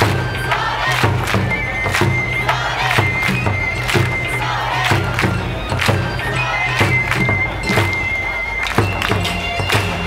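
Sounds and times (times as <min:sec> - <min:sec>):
drum strikes: 0:00.0 - 0:10.0
festival crowd noise: 0:00.0 - 0:10.0.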